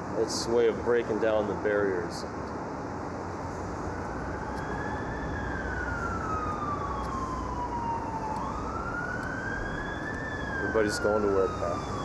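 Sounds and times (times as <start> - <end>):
traffic noise: 0.0 - 12.0
emergency siren wailing: 3.8 - 12.0.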